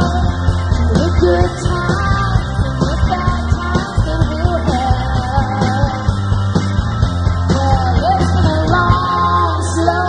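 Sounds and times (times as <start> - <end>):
live rock band playing: 0.0 - 10.0
heavy bass line: 0.9 - 2.8
pitch-bending melody line: 1.0 - 2.2.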